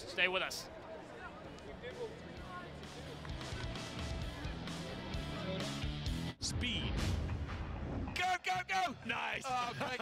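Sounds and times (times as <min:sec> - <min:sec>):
background music: 0:01.2 - 0:10.0.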